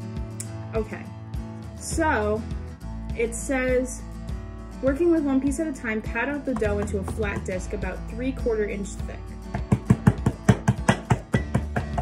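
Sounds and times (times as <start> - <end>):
background music: 0.0 - 12.0
hands patting dough: 6.5 - 7.6, 9.5 - 12.0.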